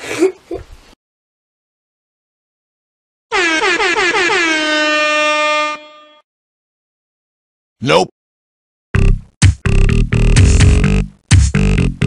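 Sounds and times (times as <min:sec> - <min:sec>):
air horn blasts: 0:03.3 - 0:06.2.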